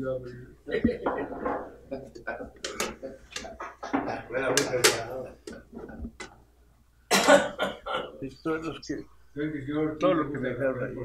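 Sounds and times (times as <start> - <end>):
laughter: 0.7 - 4.3
man coughing: 7.1 - 8.2.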